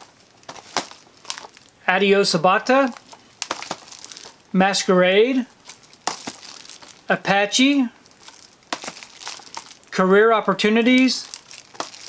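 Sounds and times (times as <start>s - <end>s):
plastic shrink-wrap crinkling: 0.0s - 1.8s, 2.7s - 4.5s, 5.4s - 10.0s, 10.8s - 12.0s.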